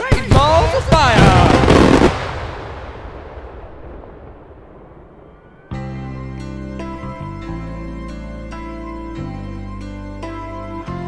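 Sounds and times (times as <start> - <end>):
firework bursts rumbling and echoing: 0.0 - 7.3.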